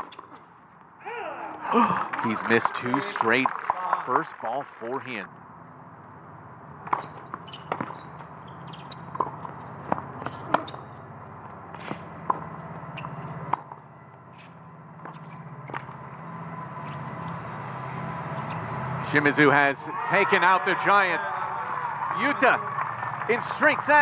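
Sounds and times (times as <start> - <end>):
crowd noise: 16.3 - 24.0.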